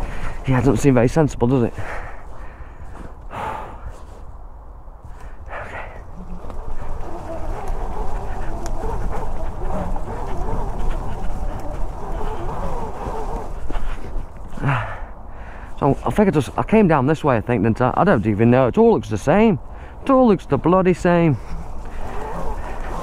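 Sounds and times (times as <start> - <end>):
man panting: 0.0 - 0.4, 1.7 - 4.2, 5.1 - 6.1, 13.8 - 15.8
electric dirt bike moving: 0.0 - 1.2, 5.1 - 14.8, 21.4 - 23.0
man breathing out heavily: 1.7 - 4.2, 5.0 - 6.1, 14.5 - 15.8.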